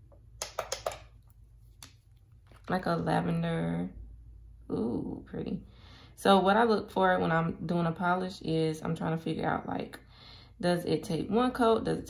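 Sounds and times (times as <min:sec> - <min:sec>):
plastic sticks clicking: 0:00.4 - 0:01.1.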